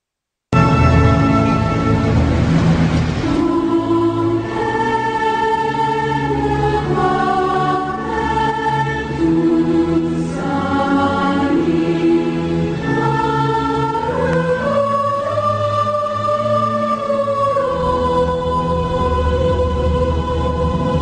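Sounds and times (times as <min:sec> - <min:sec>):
choir singing held chords: 0:00.6 - 0:21.0.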